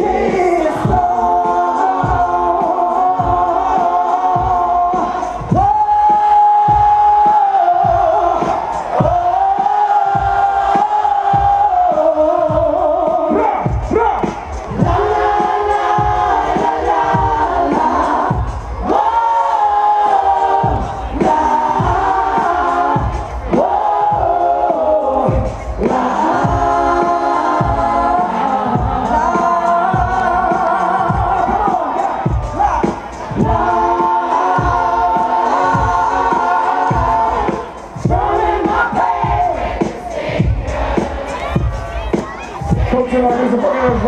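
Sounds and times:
crowd cheering and shouting: 0.0 - 44.0
live concert music: 0.0 - 44.0
voices singing held notes: 0.0 - 44.0.

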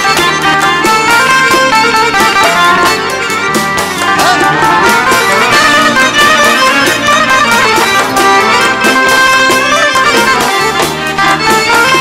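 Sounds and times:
drum kit beat: 0.0 - 12.0
electric guitar: 0.0 - 12.0
keyboard melody: 0.0 - 12.0.

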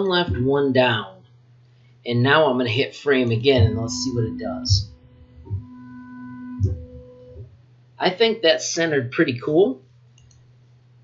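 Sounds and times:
stepper motor whine: 3.4 - 7.5.

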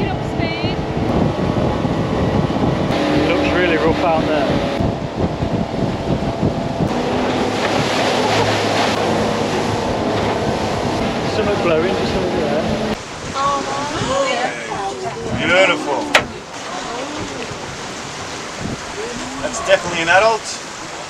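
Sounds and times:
motorboat engine running: 0.0 - 21.0
rush of wind and water: 0.0 - 21.0.

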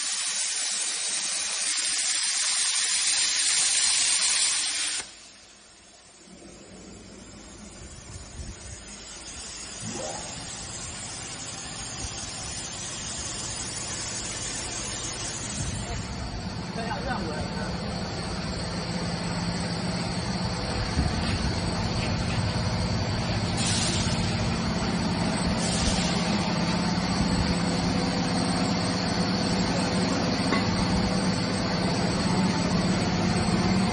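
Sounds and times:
cutting machine humming and whining: 6.8 - 33.9
hissing surges: 8.0 - 16.1.

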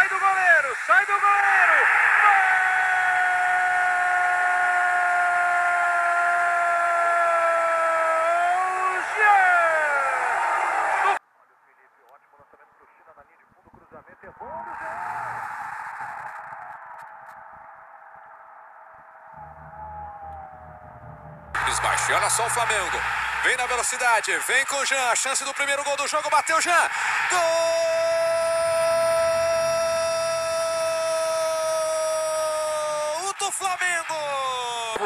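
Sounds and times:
faint stadium crowd noise: 0.0 - 35.0.

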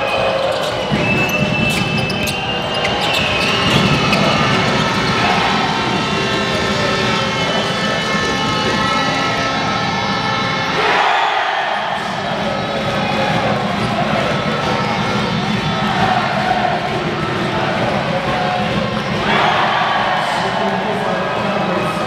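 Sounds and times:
arena crowd noise: 0.0 - 22.0.

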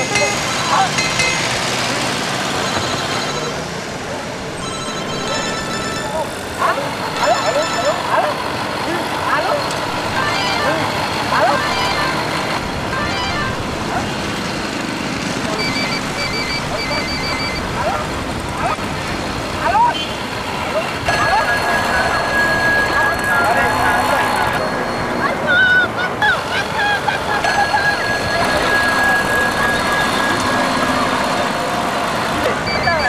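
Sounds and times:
phone ringtone trilling: 0.0 - 3.8, 4.6 - 8.3, 9.4 - 13.7, 15.4 - 17.8, 21.1 - 25.9, 26.6 - 31.7, 32.5 - 33.0
road traffic: 0.0 - 33.0
voices: 0.0 - 33.0.

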